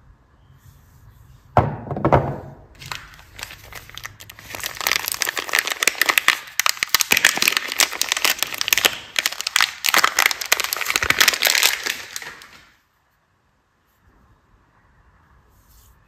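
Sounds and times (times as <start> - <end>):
wrapper crinkling: 2.8 - 12.8.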